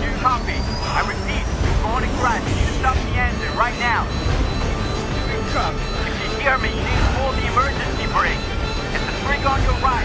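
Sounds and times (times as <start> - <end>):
soundtrack music: 0.0 - 10.0.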